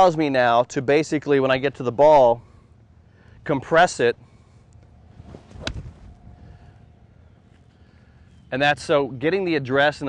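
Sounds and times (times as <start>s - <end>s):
wind rumble on microphone: 5.0s - 6.9s.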